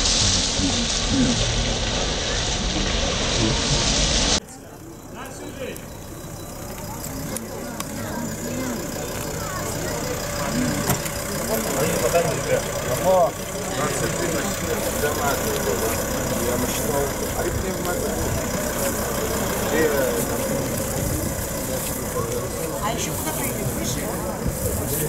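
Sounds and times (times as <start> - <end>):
loud steady rushing noise: 0.0 - 4.4
people chattering: 0.0 - 25.0
vehicle engine running: 0.0 - 25.0.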